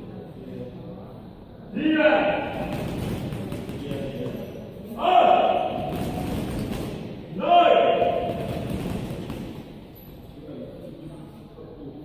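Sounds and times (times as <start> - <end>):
boxing gloves hitting punching bags: 2.4 - 4.7, 5.4 - 7.2, 7.9 - 10.0.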